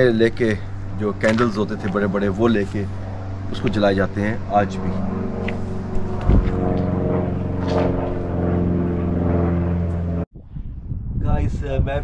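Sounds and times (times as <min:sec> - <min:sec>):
motor engine humming: 0:00.0 - 0:10.3.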